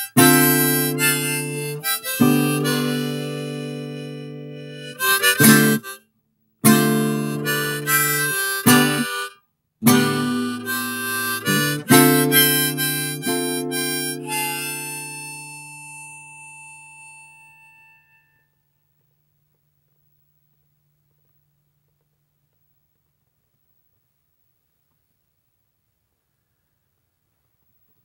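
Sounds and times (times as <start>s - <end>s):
acoustic guitar playing: 0.0s - 6.0s, 6.6s - 18.4s
harmonica: 0.0s - 6.0s, 6.6s - 18.5s.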